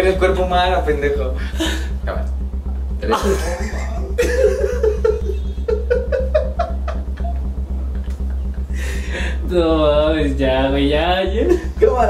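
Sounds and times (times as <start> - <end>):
background music with bass: 0.0 - 12.0
man laughing: 1.3 - 2.1, 3.0 - 9.8, 11.2 - 12.0.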